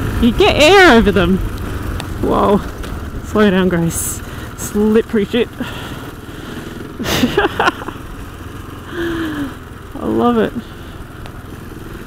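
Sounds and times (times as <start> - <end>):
motorcycle engine running: 0.0 - 12.0
road noise: 0.0 - 12.0
wind: 0.0 - 12.0.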